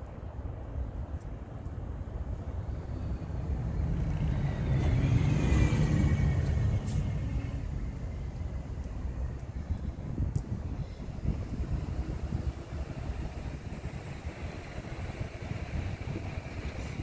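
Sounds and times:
vehicle passing by: 3.0 - 8.8.

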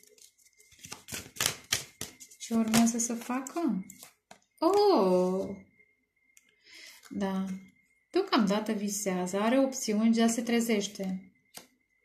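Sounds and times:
cards clicking and snapping: 0.7 - 2.9
woman speaking: 2.4 - 3.9, 4.6 - 5.6, 7.1 - 11.2.

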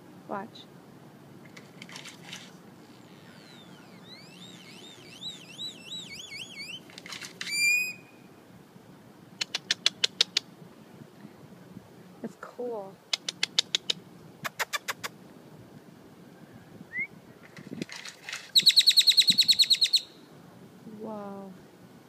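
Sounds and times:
bird whistling calls: 2.8 - 8.3, 18.6 - 20.2
bird harsh note: 2.9 - 6.9
bird sharp clicks: 9.4 - 10.5, 13.1 - 15.2.

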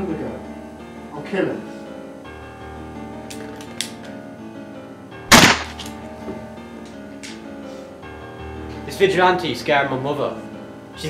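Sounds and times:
background music: 0.0 - 11.0
pistol gunshot: 5.3 - 5.9.

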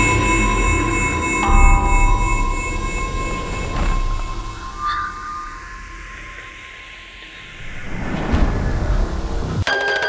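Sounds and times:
low rumble: 0.0 - 9.6
eerie drone tone: 0.0 - 9.7.

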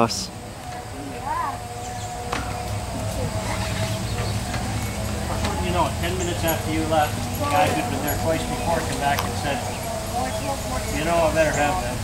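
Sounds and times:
indistinct talking: 0.0 - 12.0
steady low rumble: 0.0 - 12.0.

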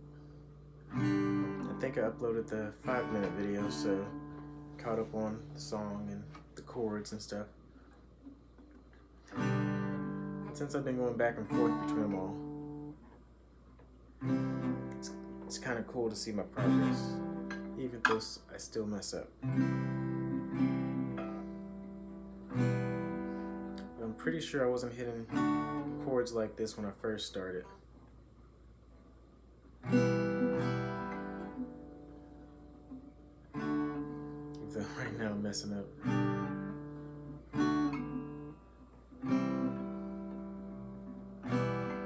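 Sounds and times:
acoustic guitar chord strummed: 0.0 - 7.4, 9.2 - 13.2, 14.2 - 27.2, 29.8 - 42.0.

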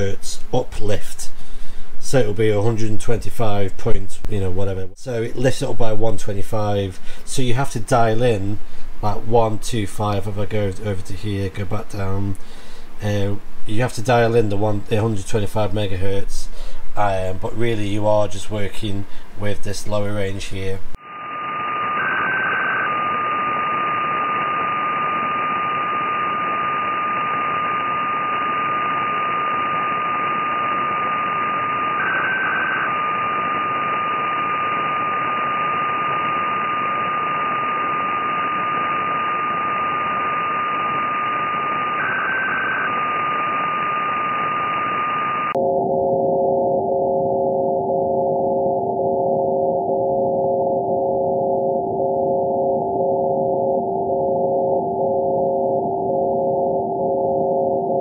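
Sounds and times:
radio receiver hiss: 0.0 - 45.6
pulsing tone: 21.0 - 58.0.

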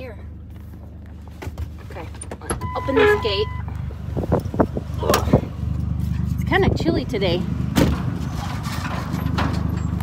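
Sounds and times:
truck engine running: 0.0 - 10.0
knocks and rattles: 7.7 - 10.0.

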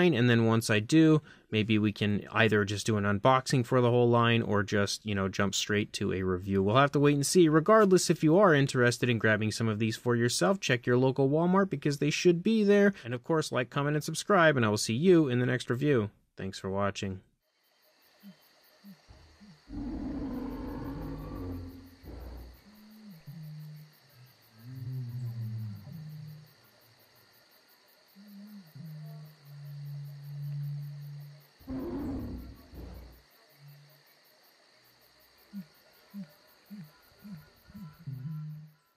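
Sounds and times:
animal roar sound effects: 19.1 - 23.7, 31.6 - 33.2
low held tones: 37.3 - 38.8.

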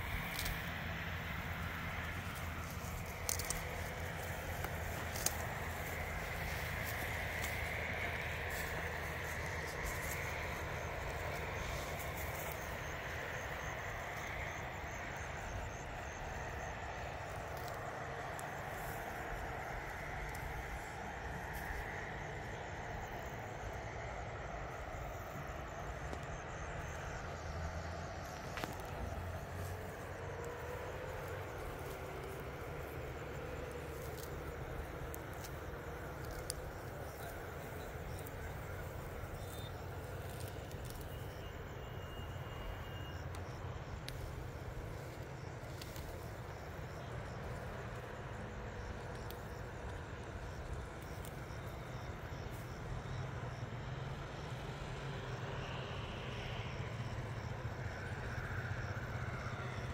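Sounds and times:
low outdoor rumble: 0.0 - 59.9
faint clicks: 33.6 - 38.6.

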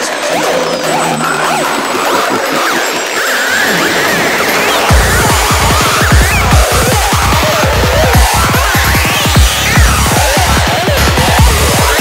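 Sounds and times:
electronic dance synth effects: 0.0 - 12.0.

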